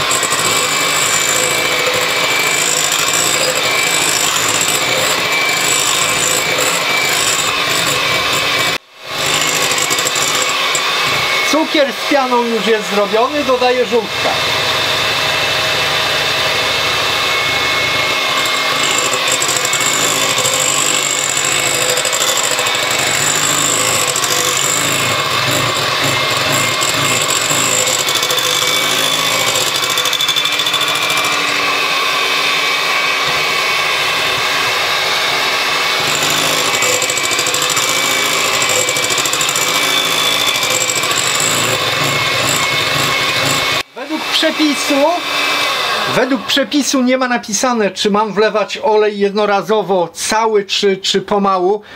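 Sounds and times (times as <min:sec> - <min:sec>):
electric hand mixer whirring: 0:00.0 - 0:46.6.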